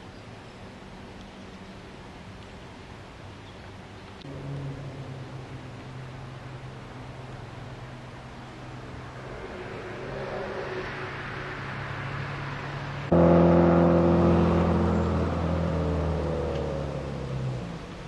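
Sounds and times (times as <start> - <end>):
louder engine sound: 4.2 - 18.0
vehicle engine running: 4.2 - 18.0.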